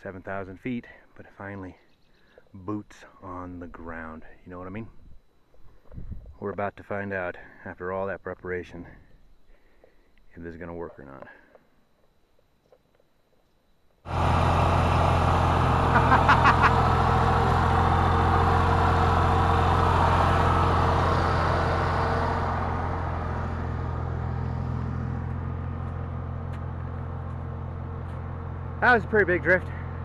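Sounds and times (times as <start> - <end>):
tyres on gravel road: 10.8 - 30.0
truck engine drone: 14.1 - 30.0.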